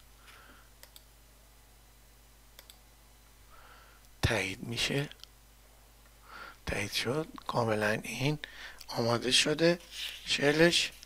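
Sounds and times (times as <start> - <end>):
computer mouse clicks: 0.8 - 1.1, 2.6 - 2.8.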